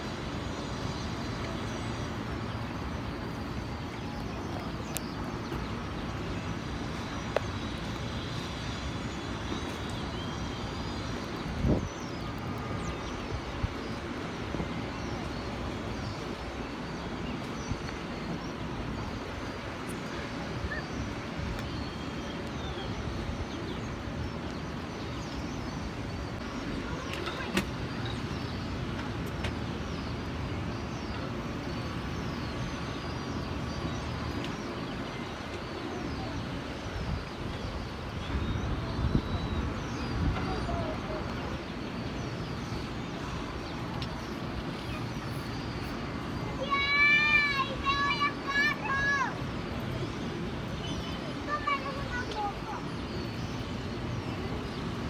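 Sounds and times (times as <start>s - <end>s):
distant city traffic rumble: 0.0s - 55.0s.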